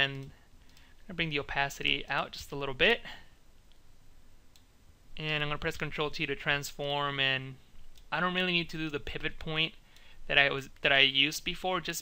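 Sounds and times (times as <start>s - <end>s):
faint mouse clicks: 0.1s - 0.9s, 4.5s - 4.7s.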